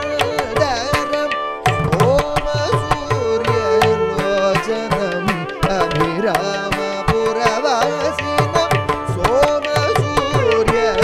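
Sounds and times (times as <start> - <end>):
man singing: 0.0 - 11.0
violin melody: 0.0 - 11.0.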